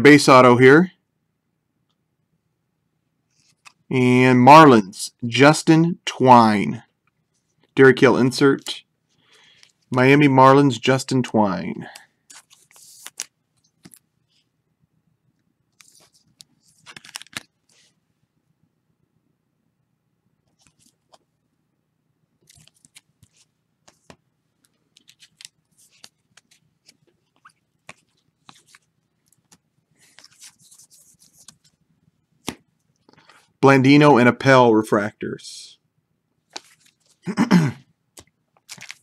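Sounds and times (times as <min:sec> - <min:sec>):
cards rustling and clicking: 0:03.3 - 0:03.9, 0:11.8 - 0:14.1, 0:15.8 - 0:17.9, 0:20.5 - 0:21.3, 0:22.4 - 0:31.8, 0:36.5 - 0:37.3, 0:38.2 - 0:39.0.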